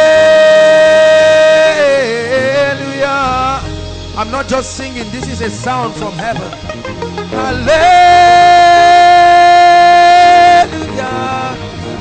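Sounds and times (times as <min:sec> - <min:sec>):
man singing long chant note: 0:00.0 - 0:06.6, 0:07.3 - 0:11.7
soft sustained musical backing: 0:00.0 - 0:12.0.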